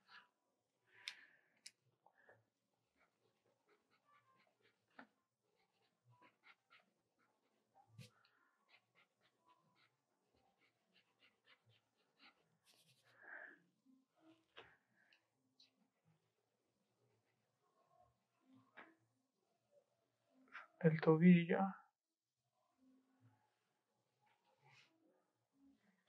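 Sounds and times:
pencil scratching on paper: 2.8 - 13.2.

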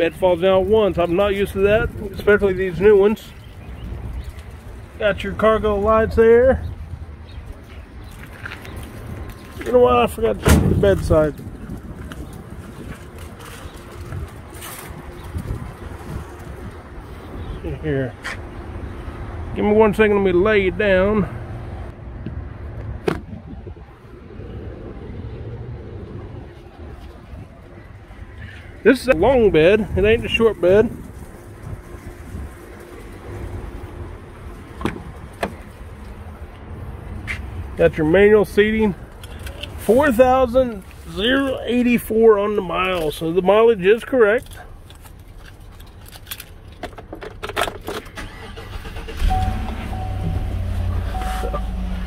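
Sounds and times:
keys rattling in ignition: 44.3 - 52.0
truck engine starting and idling: 47.6 - 52.0
low outdoor rumble: 48.6 - 52.0
dashboard chime tone: 49.3 - 52.0.

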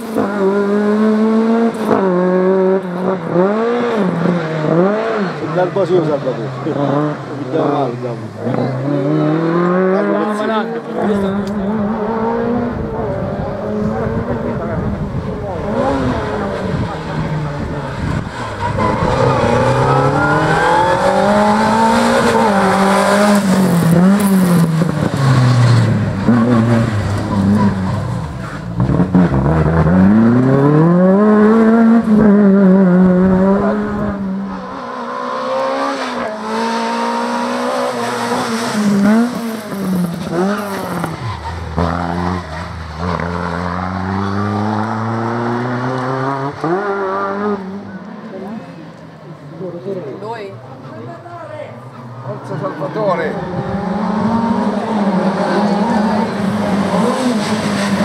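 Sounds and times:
car engine revving hard: 0.0 - 48.0, 52.9 - 58.0.

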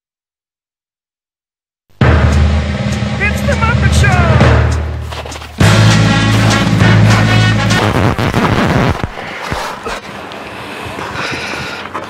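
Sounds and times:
loud low rumble: 2.0 - 8.4.

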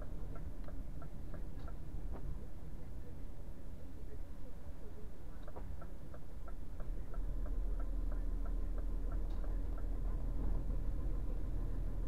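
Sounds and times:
engine and road rumble: 0.0 - 12.0
turn signal ticking: 5.4 - 12.0.

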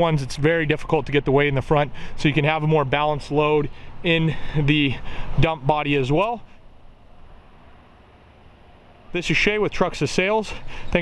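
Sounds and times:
outdoor low rumble: 0.0 - 10.0.

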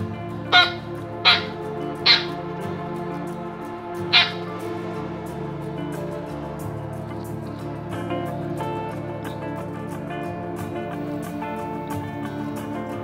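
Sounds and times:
background music: 0.0 - 13.0
small dog yapping: 0.5 - 2.4, 4.1 - 4.5.

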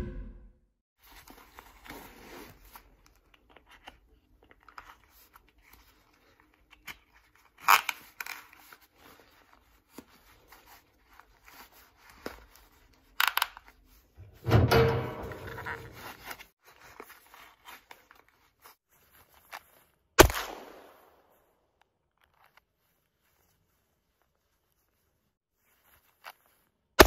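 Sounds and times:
ratchet belt strap rasping: 6.7 - 9.6
pistol shot: 20.2 - 21.1.

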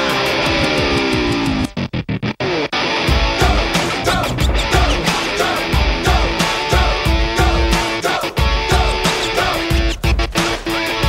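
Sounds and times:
pop-rock band with electric guitar: 0.0 - 1.8, 2.5 - 11.0.

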